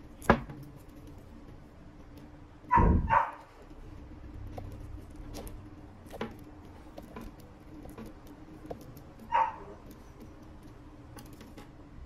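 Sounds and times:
dog barking loudly: 0:02.7 - 0:03.5, 0:09.3 - 0:09.8.

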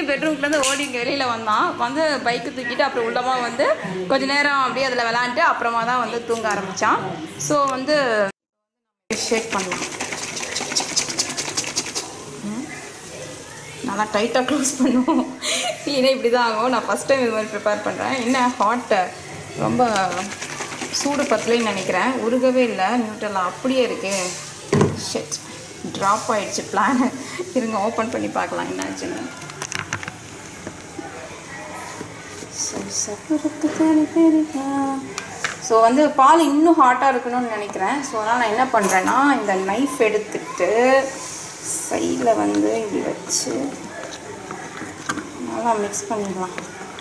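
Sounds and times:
liquid sloshing in a jar: 0:09.3 - 0:12.2, 0:19.8 - 0:22.1.

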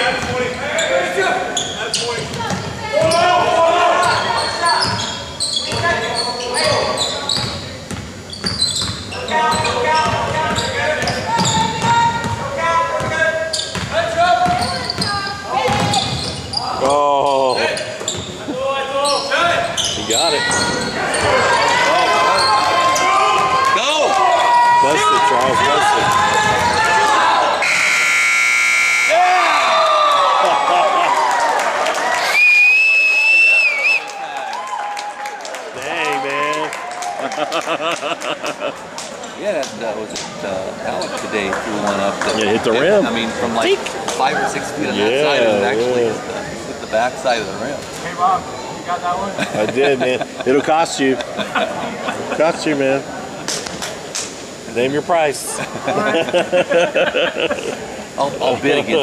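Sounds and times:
shoe squeals: 0:00.0 - 0:03.4, 0:04.0 - 0:12.3, 0:13.0 - 0:23.2
voices echoing in hall: 0:00.0 - 0:29.8, 0:35.4 - 0:59.0
basketball bouncing on wooden court: 0:13.7 - 0:16.3
loud steady tone: 0:27.6 - 0:29.6.

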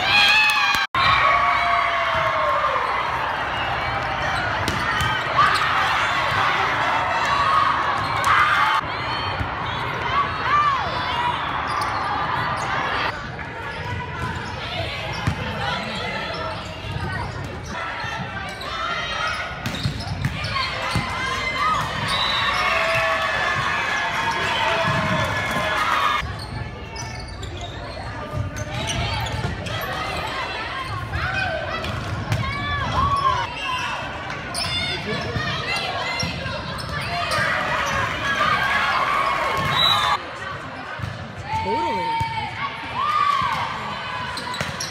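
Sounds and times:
hubbub of spectators' voices: 0:00.0 - 0:44.9.

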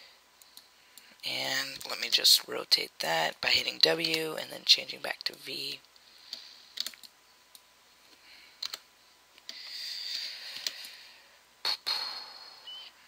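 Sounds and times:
soft hiss: 0:00.0 - 0:13.0
computer mouse clicks: 0:06.3 - 0:07.6, 0:08.6 - 0:08.8.

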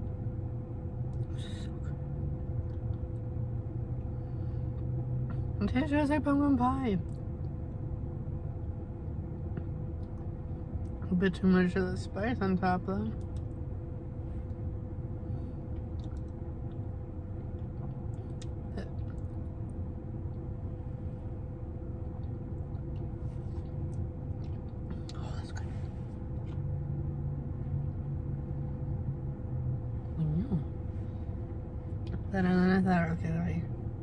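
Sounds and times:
low rumble inside car: 0:00.0 - 0:34.0.

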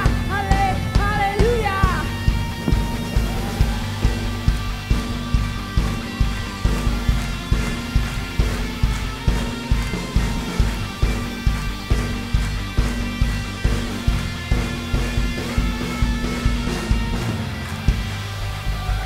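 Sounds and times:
kick drum beat: 0:00.0 - 0:17.2
electric guitar strumming chords: 0:00.0 - 0:19.0.

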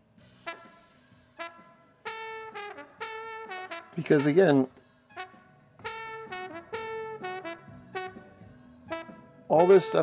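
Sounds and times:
brass horn short notes: 0:00.4 - 0:08.3, 0:08.9 - 0:10.0.

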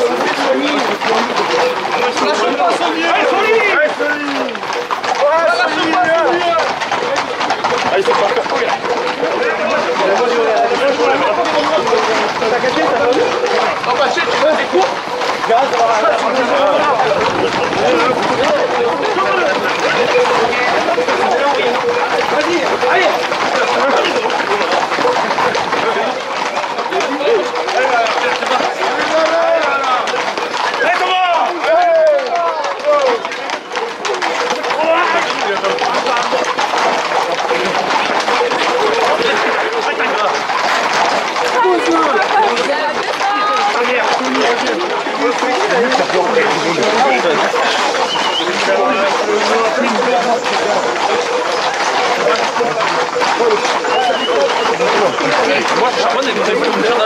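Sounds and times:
crowd shouting: 0:00.0 - 0:57.0.

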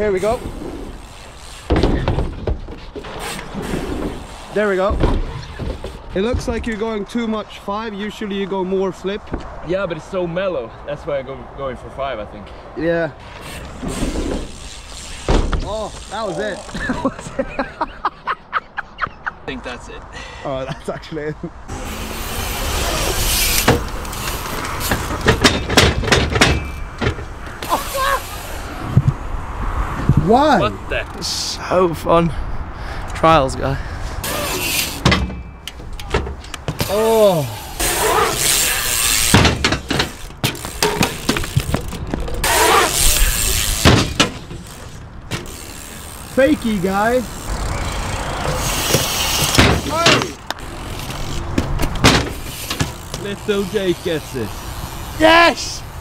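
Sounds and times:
bike tyres rolling on concrete: 0:00.0 - 0:10.4, 0:12.1 - 0:17.4, 0:21.7 - 0:32.0, 0:33.7 - 0:56.0
bike knocking and clattering on concrete: 0:01.0 - 0:06.9, 0:13.3 - 0:17.1, 0:23.2 - 0:27.8, 0:34.2 - 0:37.2, 0:37.8 - 0:54.9
person shouting: 0:27.7 - 0:28.4.

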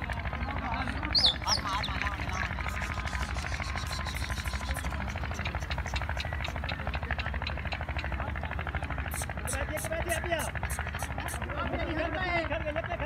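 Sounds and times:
steady low rumble: 0:00.0 - 0:13.0
pigeon wings flapping: 0:01.4 - 0:11.5.

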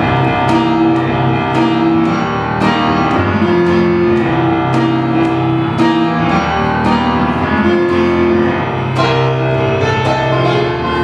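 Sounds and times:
solo piano: 0:00.0 - 0:11.0.

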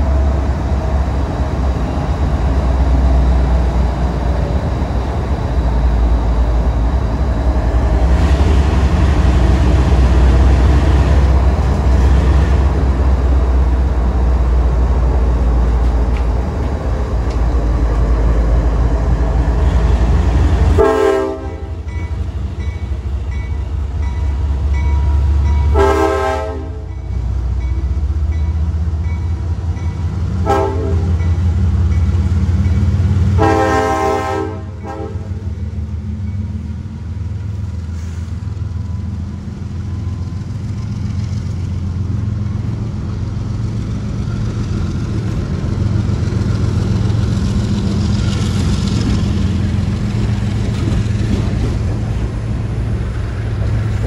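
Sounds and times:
boxcar wheels rumbling on rail: 0:00.0 - 0:54.0
locomotive engine rumble: 0:00.0 - 0:54.0
locomotive air horn blasts: 0:20.7 - 0:21.8, 0:25.7 - 0:26.9, 0:30.4 - 0:31.2, 0:33.3 - 0:35.4.

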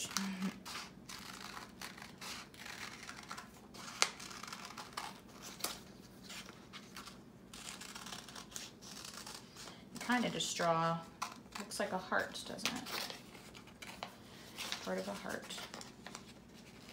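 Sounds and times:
paper rustling: 0:11.2 - 0:16.9.

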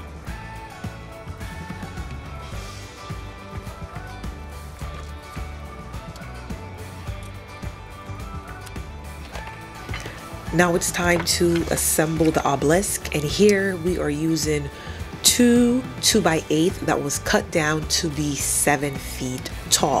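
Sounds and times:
background music with steady beat: 0:00.0 - 0:20.0.

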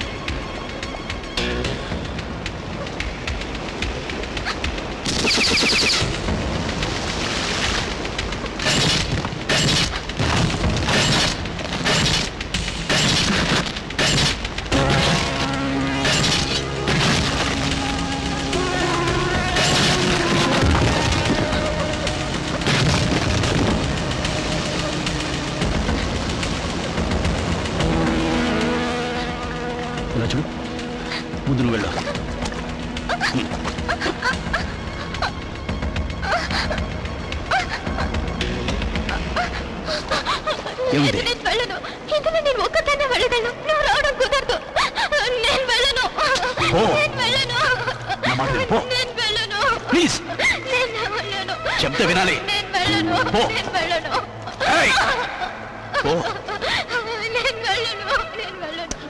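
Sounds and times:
rumbling rushing water and rock: 0:00.0 - 0:42.1
gunshots: 0:08.6 - 0:15.4
steady tones: 0:52.4 - 0:56.5.

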